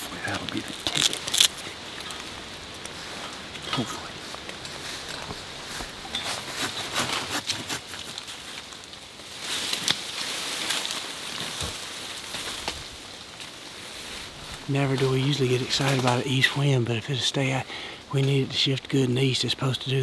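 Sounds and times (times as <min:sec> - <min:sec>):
leaves and branches rustling: 0:00.0 - 0:20.0.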